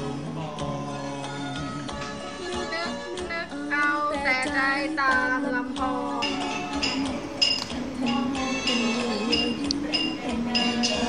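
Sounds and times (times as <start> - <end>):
instrumental backing music: 0.0 - 11.0
woman singing with vibrato: 2.5 - 11.0.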